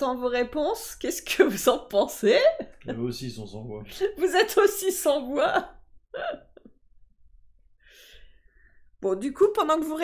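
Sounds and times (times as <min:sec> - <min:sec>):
woman laughing: 0:06.2 - 0:06.7.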